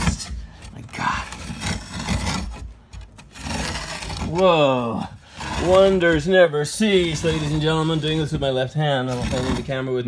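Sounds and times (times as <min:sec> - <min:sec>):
scraping and rubbing: 0:00.0 - 0:10.0.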